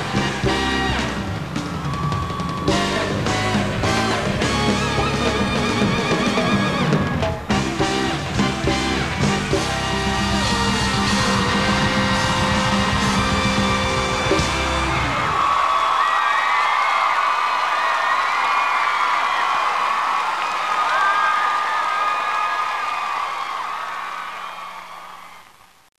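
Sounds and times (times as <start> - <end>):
live pop band playing: 0.0 - 15.4
audience cheering and screaming: 0.0 - 25.6.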